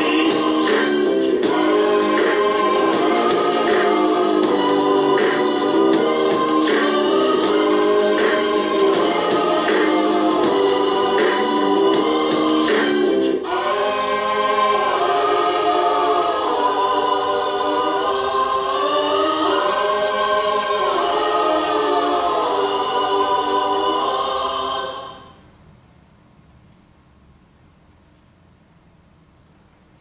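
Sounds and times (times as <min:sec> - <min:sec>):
rhythmic beat: 0:00.0 - 0:22.8
choir singing held chords: 0:00.0 - 0:25.5.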